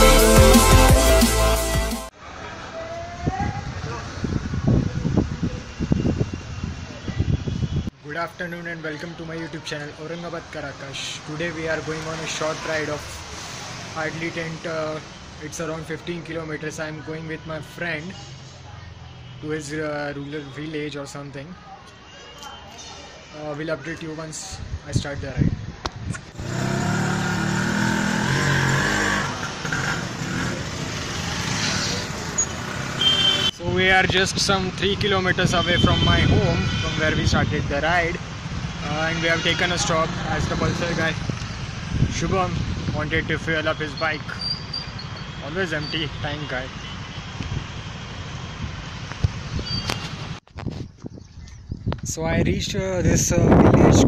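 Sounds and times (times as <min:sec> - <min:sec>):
scooter engine pulling away: 0:26.4 - 0:33.2.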